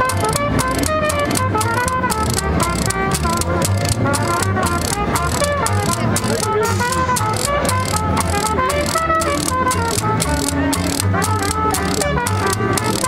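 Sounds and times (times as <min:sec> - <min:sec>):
banjo: 0:00.0 - 0:13.0
plucked double bass: 0:00.0 - 0:13.0
trombone: 0:00.0 - 0:13.0
trumpet playing tune: 0:00.0 - 0:13.0.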